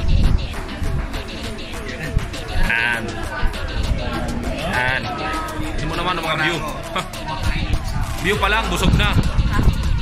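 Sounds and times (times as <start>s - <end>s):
background music: 0.0s - 10.0s
voices talking: 0.0s - 10.0s
wavering high-pitched sound: 0.0s - 10.0s.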